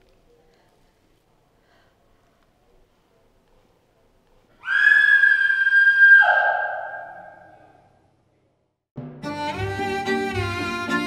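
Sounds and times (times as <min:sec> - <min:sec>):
high whistle-like tone: 0:04.7 - 0:07.5.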